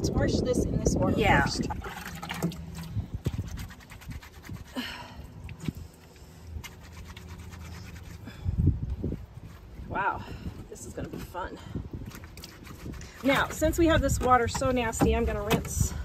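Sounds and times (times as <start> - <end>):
wet cloth scrubbed and wrung out: 1.2 - 8.3, 10.6 - 14.4.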